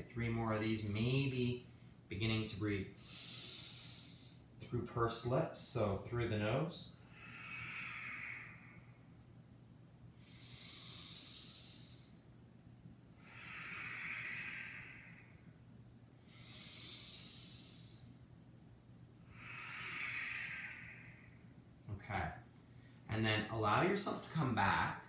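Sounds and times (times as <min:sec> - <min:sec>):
man breathing slowly: 0:02.9 - 0:04.6, 0:07.0 - 0:09.2, 0:10.1 - 0:12.3, 0:13.2 - 0:15.6, 0:16.2 - 0:18.3, 0:19.2 - 0:21.6.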